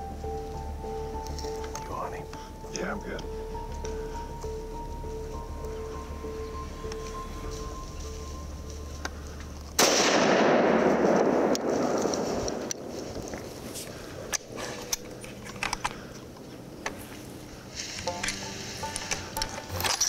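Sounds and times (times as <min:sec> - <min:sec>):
rifle shot with echo: 0:09.8 - 0:13.0.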